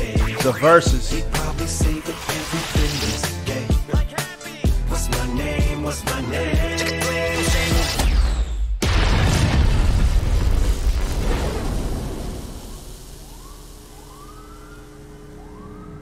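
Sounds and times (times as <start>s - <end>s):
music: 0.0s - 8.6s
loud rumbling blast: 8.8s - 13.3s
faint police sirens wailing: 12.6s - 16.0s.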